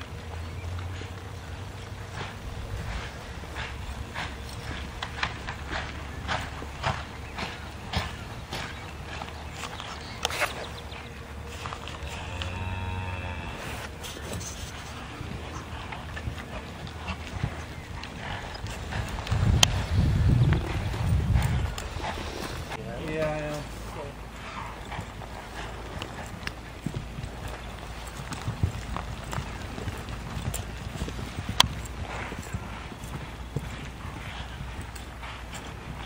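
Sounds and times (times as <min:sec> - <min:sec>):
horse hooves on dirt: 0:00.0 - 0:36.0.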